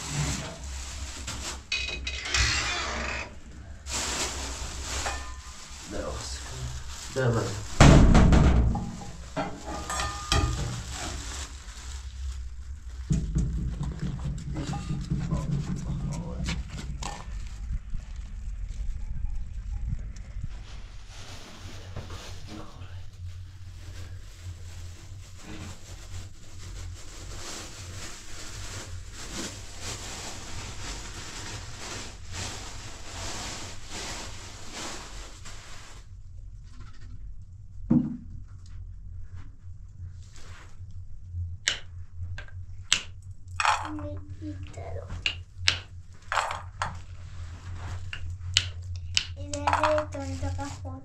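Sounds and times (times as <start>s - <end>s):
low hum: 0.0s - 51.0s
steady hiss: 3.6s - 7.9s.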